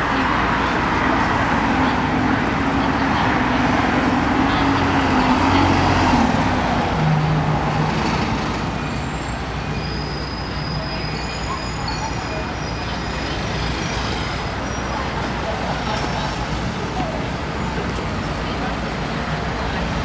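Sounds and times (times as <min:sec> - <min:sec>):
background chatter: 0:00.0 - 0:20.0.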